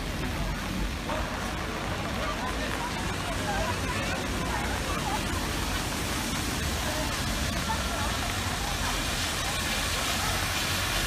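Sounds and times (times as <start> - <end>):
faint chatter of people: 0.0 - 11.0
rain on wet street: 0.0 - 11.0.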